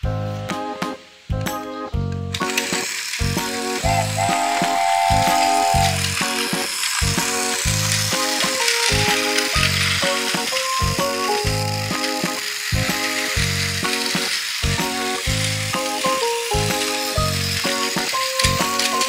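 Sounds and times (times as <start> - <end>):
background music with beat: 0.0 - 2.3, 3.3 - 7.8
toy train whirring on track: 2.3 - 19.0.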